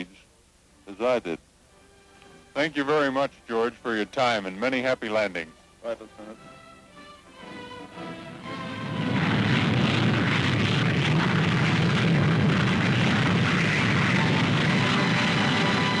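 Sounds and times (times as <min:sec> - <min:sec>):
orchestral music: 0:05.1 - 0:09.9, 0:14.4 - 0:16.0
jet engine roar: 0:07.9 - 0:16.0.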